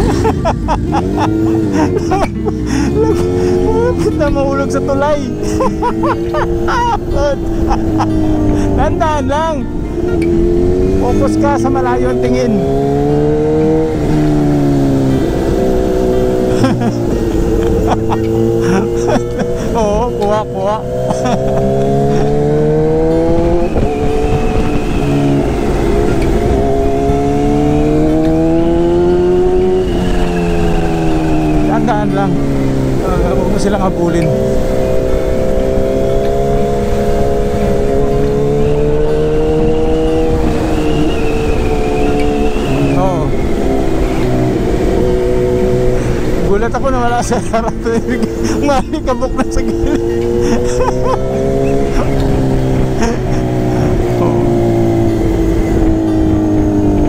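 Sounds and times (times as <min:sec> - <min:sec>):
motorcycle engine revving: 0:00.0 - 0:57.0
road and wind noise: 0:00.0 - 0:57.0.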